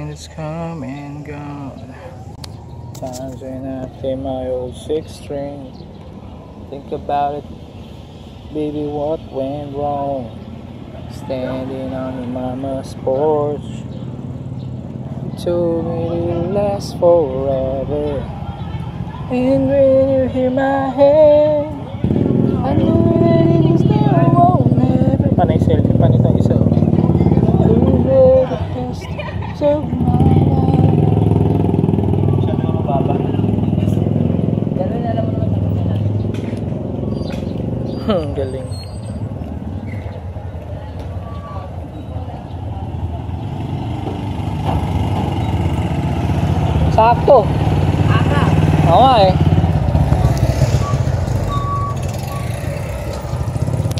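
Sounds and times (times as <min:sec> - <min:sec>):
people's voices: 0:15.2 - 0:45.8, 0:46.7 - 0:53.9.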